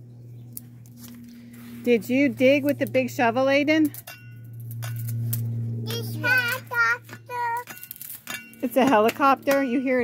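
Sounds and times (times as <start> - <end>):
helicopter flying overhead: 0.0 - 10.0.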